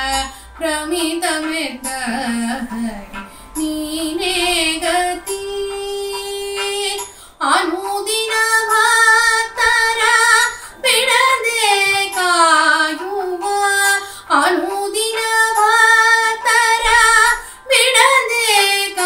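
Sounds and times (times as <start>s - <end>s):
woman singing devotional song: 0.0s - 19.0s.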